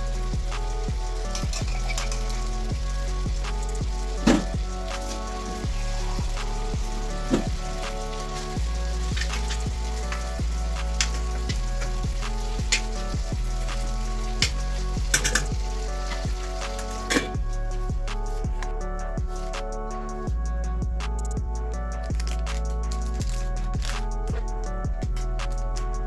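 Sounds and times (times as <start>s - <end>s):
chicken sizzling in frying pan: 0.0s - 17.4s
background music with beat: 0.0s - 26.0s.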